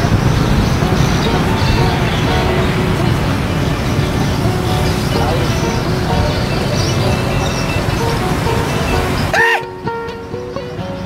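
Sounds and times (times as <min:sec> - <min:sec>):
faint background music: 0:00.0 - 0:11.0
low outdoor rumble: 0:00.0 - 0:11.0
road traffic: 0:00.0 - 0:11.0.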